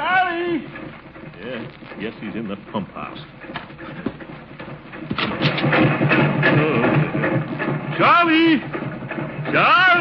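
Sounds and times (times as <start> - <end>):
rapid rhythmic machine clatter: 0.0 - 10.0.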